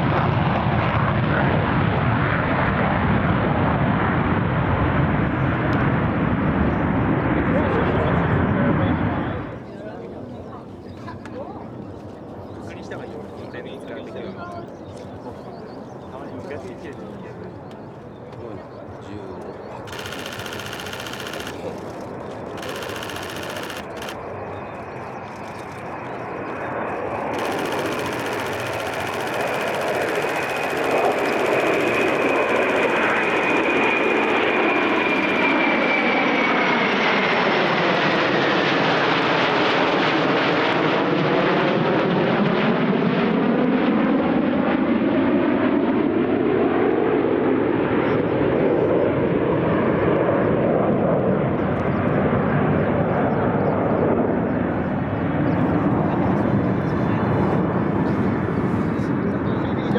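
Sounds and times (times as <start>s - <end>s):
jets passing overhead: 0.1s - 59.9s.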